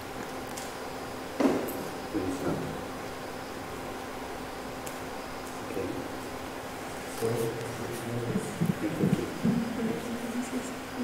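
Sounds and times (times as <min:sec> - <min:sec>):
people talking quietly: 0:06.9 - 0:11.0.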